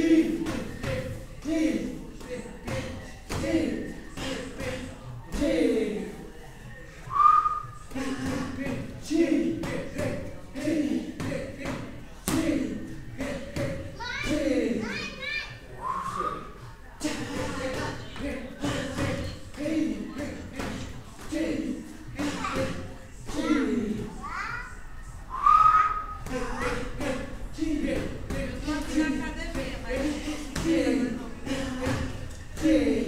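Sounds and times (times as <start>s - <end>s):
brief whistle-like tone: 7.1s - 7.7s, 25.3s - 26.2s
short wordless vocal sounds: 30.0s - 33.0s.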